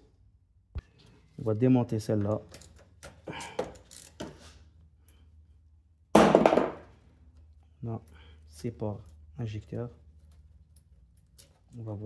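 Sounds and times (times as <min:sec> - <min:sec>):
gloved hands handling parts: 0:07.1 - 0:12.0.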